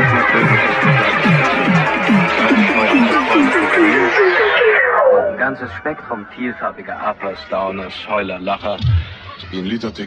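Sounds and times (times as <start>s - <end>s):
spoken voice sample: 3.6s - 7.4s.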